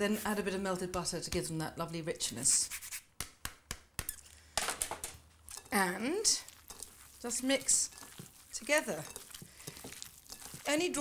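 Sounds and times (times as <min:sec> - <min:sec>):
utensil scraping: 0:05.5 - 0:11.0.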